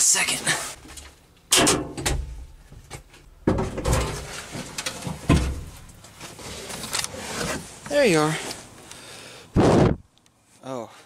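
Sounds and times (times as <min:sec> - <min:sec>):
loud thuds: 0:09.6 - 0:10.1.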